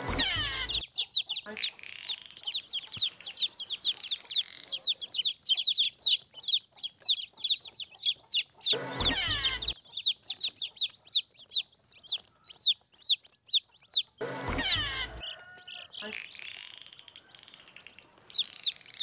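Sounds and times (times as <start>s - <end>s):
chicks peeping: 0.0s - 19.0s.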